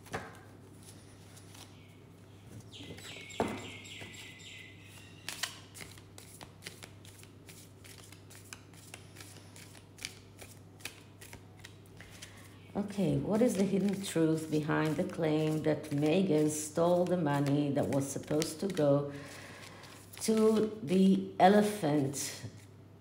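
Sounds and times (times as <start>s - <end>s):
cards being shuffled: 5.2s - 12.4s, 13.4s - 20.8s.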